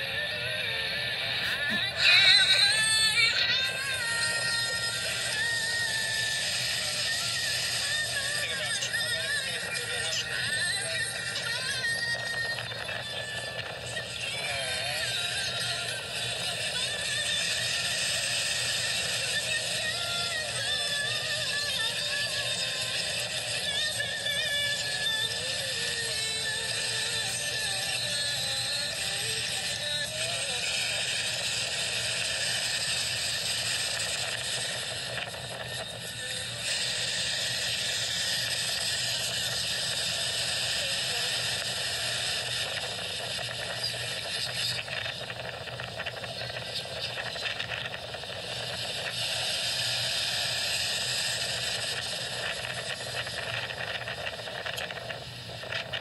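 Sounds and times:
wind: 0:00.0 - 0:56.0.

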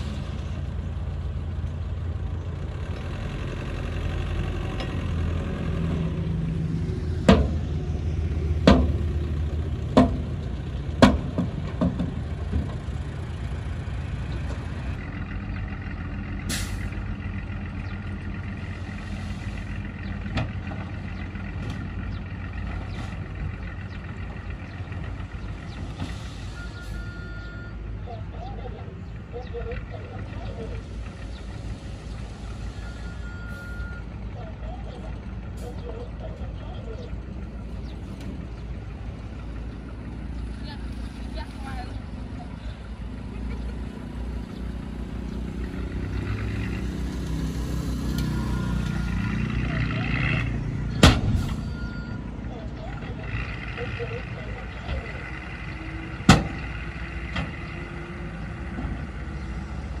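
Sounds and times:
dump truck engine running: 0:00.0 - 1:00.0.

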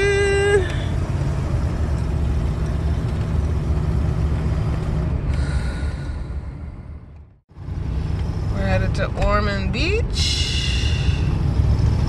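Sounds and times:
motorhome engine and road rumble: 0:00.0 - 0:12.0.

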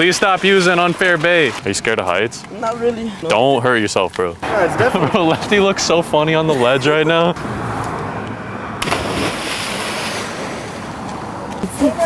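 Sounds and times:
splash of jump into sea: 0:08.8 - 0:10.9.

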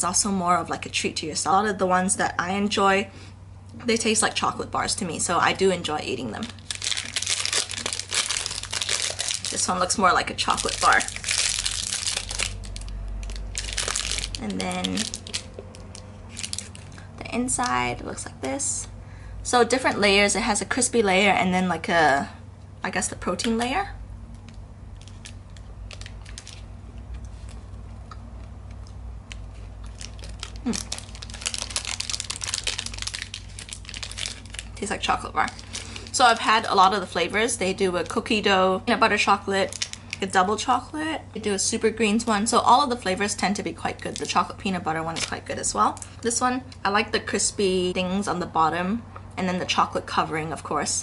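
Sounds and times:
foil wrapper crinkling: 0:06.2 - 0:17.7, 0:24.4 - 0:26.7, 0:29.3 - 0:38.4, 0:39.6 - 0:40.4, 0:43.2 - 0:46.3
chewing crispy bar: 0:06.5 - 0:09.8, 0:10.5 - 0:17.1, 0:24.4 - 0:34.8.

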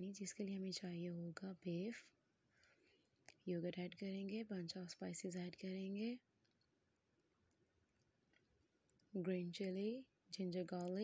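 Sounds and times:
woman's voice: 0:00.0 - 0:02.2, 0:03.3 - 0:06.3, 0:09.1 - 0:11.0
faint clicks: 0:02.6 - 0:03.5, 0:06.4 - 0:09.2.

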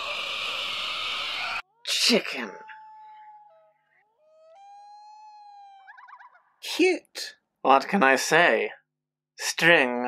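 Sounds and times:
falsetto coo with warbling trill: 0:01.6 - 0:06.6.

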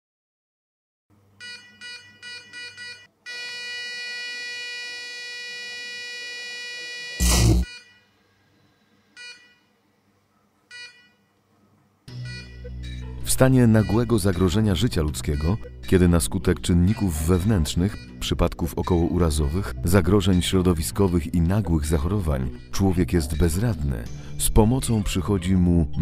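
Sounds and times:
flatline tone: 0:01.4 - 0:08.2
loud thump: 0:07.2 - 0:07.7
music: 0:12.1 - 0:26.0.

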